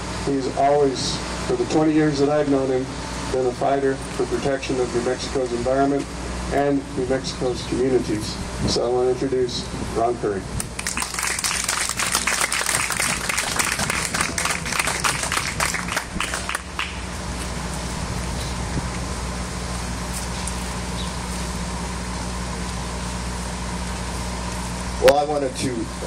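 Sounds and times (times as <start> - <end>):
steady low hum: 0.0 - 26.0
audience applauding: 10.8 - 17.0.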